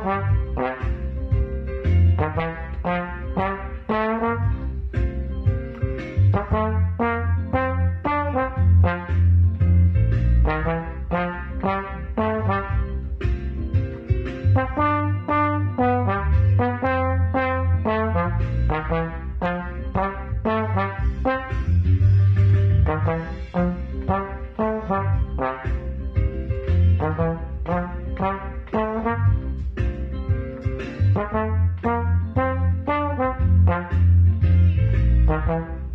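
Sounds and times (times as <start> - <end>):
slide trombone melody: 0.0 - 1.2, 2.1 - 4.8, 6.2 - 9.4, 10.4 - 13.1, 14.5 - 26.1, 26.9 - 29.6, 31.0 - 34.3, 35.2 - 35.9
low bass line: 0.0 - 35.9.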